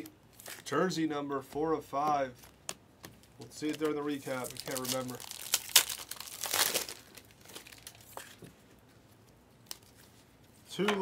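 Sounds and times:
foil wrapper crinkling and tearing: 3.2 - 8.4.

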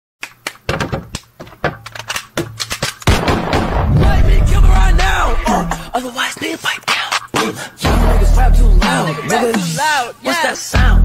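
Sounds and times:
sharp irregular knocks and clicks: 0.2 - 3.1
loud thud: 3.1 - 5.9.

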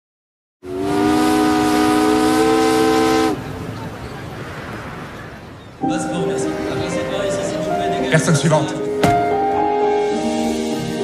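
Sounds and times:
steam whistle blast: 0.6 - 3.4
steam hissing: 0.7 - 3.4.

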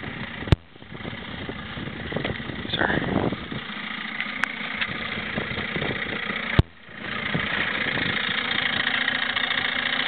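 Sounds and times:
low engine-like rumble: 0.0 - 10.0.

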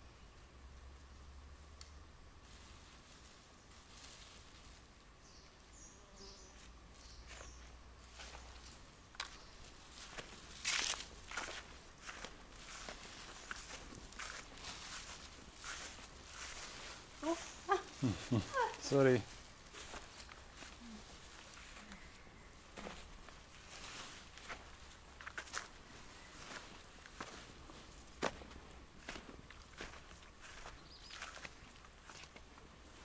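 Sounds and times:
footsteps on dry grass: 6.6 - 33.0.

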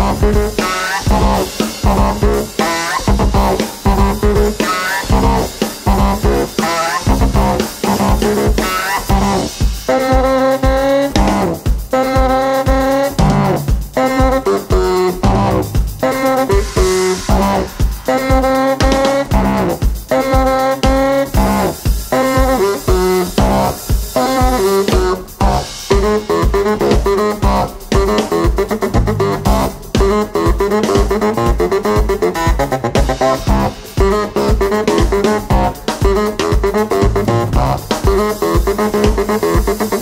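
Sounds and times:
baritone saxophone: 0.0 - 40.0
kick drum beat: 0.0 - 40.0.

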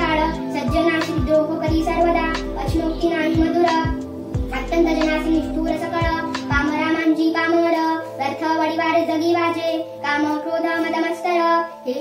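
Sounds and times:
girl chanting sing-song melody: 0.0 - 12.0.

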